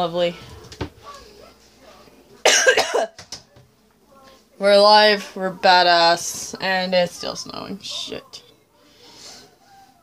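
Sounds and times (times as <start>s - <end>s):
woman coughing harshly: 2.4s - 3.2s.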